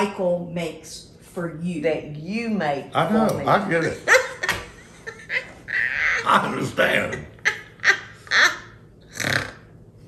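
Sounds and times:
woman laughing: 3.8 - 6.5, 7.3 - 8.8.

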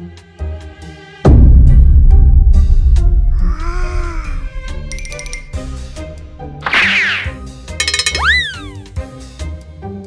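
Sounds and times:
cartoon background music: 0.0 - 10.0.

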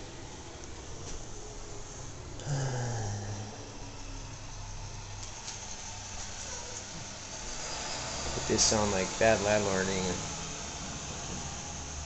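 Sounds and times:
steady low hum: 0.0 - 12.0
man groaning: 2.4 - 3.6.

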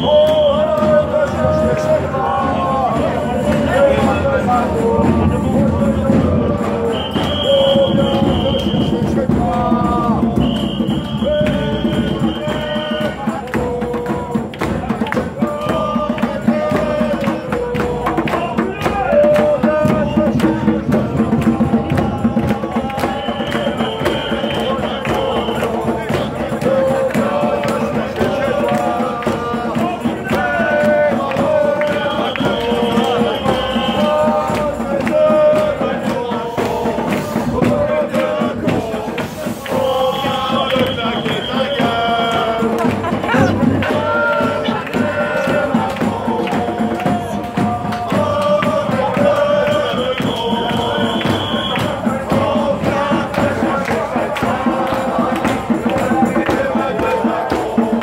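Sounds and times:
crowd singing a chant: 0.0 - 58.0
clapping: 13.4 - 20.6, 21.4 - 35.3, 39.2 - 58.0.

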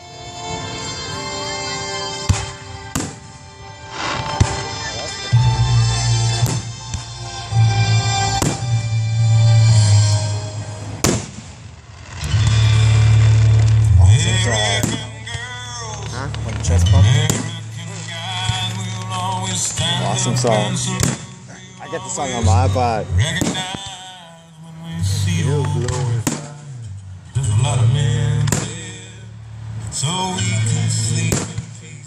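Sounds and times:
loud music: 0.0 - 11.0, 12.3 - 23.7
fireworks bursting: 2.1 - 5.4, 6.1 - 29.2, 29.8 - 32.0
people's voices: 3.9 - 8.8, 12.5 - 32.0.

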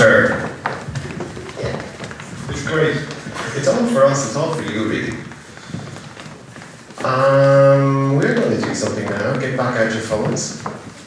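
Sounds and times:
feet shuffling on stage floor: 0.0 - 11.0
hall background noise: 0.0 - 11.0.

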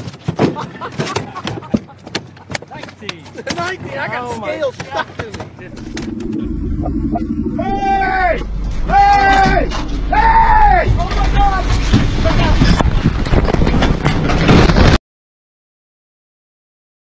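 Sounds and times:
outboard motor drone: 5.6 - 12.3
men whooping: 7.1 - 10.9.

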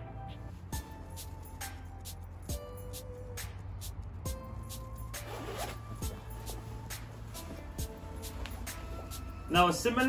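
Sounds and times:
music with steady beat: 0.0 - 10.0
zipper pulled open: 5.2 - 9.3.

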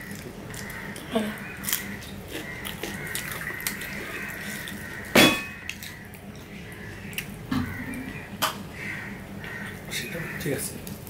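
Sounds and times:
soft eating clicks: 0.0 - 8.6.

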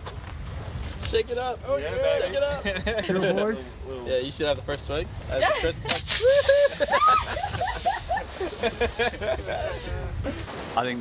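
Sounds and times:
champagne bottle spraying fizz: 5.9 - 10.0
people whooping and laughing: 6.0 - 10.1.

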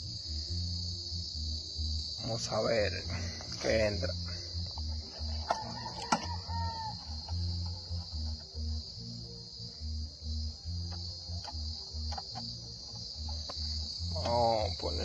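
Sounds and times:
insects chirping: 0.0 - 15.0
pulsing bassline music: 0.0 - 15.0.

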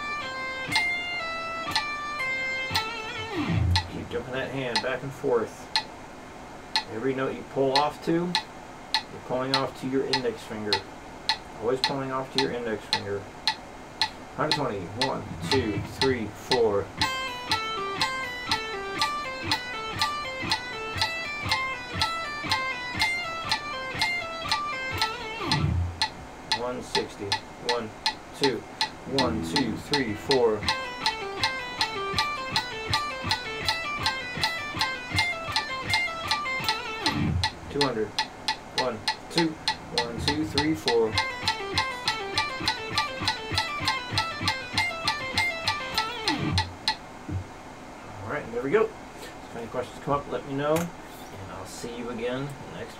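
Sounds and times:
electric guitar notes: 0.0 - 4.0, 14.5 - 26.2, 28.8 - 47.5
metronome clicking: 0.1 - 4.0, 4.7 - 5.0, 5.7 - 5.9, 6.7 - 6.9, 7.7 - 47.0.

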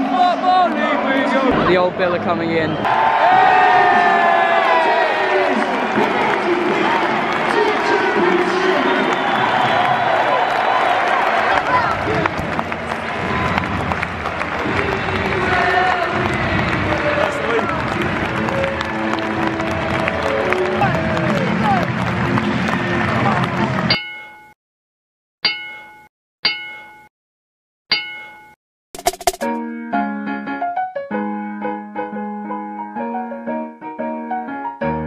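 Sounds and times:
stadium crowd cheering and singing: 0.0 - 23.9
crowd clapping: 2.8 - 23.9
music: 11.7 - 23.9, 29.0 - 35.0.

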